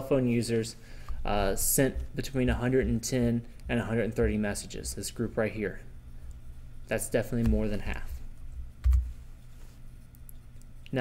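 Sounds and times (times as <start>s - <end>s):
computer click with dull thump: 8.8s - 9.1s.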